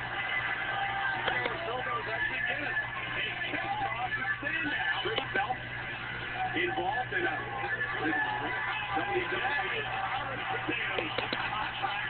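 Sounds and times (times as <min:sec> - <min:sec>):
arena crowd noise: 0:00.0 - 0:12.0
commentary voices shouting: 0:00.0 - 0:12.0.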